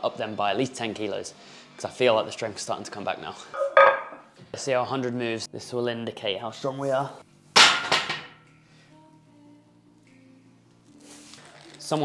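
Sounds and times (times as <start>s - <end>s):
barbell knocking onto rack: 7.6s - 8.4s.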